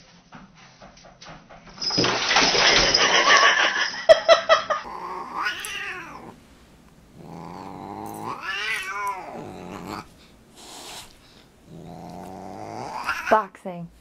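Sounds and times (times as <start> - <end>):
cat growling and yowling: 4.8 - 6.4, 7.1 - 10.1, 11.6 - 13.5.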